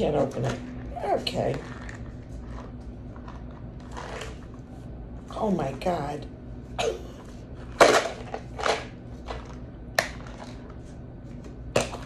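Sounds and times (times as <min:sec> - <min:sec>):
plastic scraping and creaking: 0:00.4 - 0:04.6.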